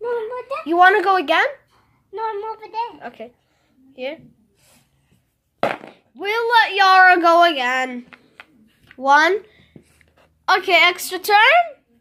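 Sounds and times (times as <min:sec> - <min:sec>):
child speaking: 0:00.0 - 0:03.3.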